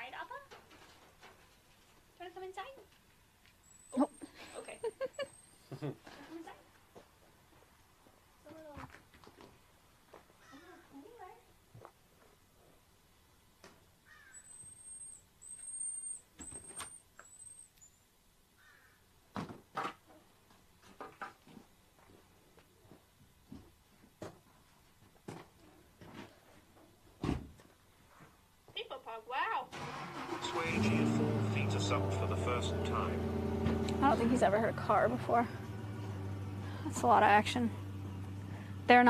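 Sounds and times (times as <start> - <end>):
marmoset whistled calls: 14.3 - 17.9.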